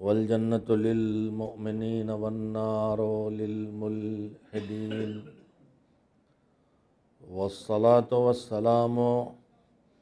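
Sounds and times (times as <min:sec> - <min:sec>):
man chanting in slow recitation: 0:00.0 - 0:05.4, 0:07.2 - 0:09.5.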